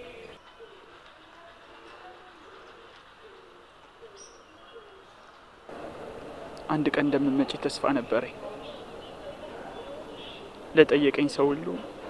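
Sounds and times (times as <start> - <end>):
faint low bird calls: 6.5 - 12.0.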